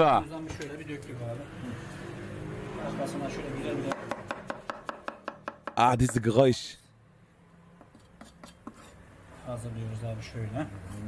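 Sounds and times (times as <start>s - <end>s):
knife chopping on wooden board: 3.9s - 6.3s
man talking: 5.8s - 6.8s.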